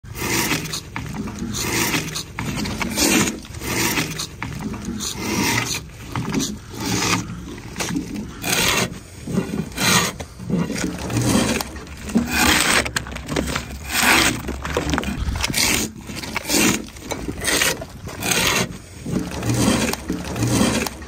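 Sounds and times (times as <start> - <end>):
drawknife rasping along log: 0.1 - 21.0.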